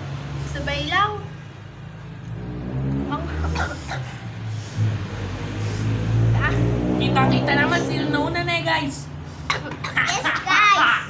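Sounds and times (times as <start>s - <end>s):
low rumbling hum: 1.7s - 9.4s.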